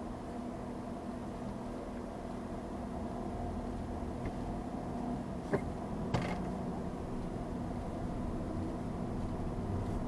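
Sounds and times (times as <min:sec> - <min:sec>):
car idling hum: 0:00.0 - 0:10.0.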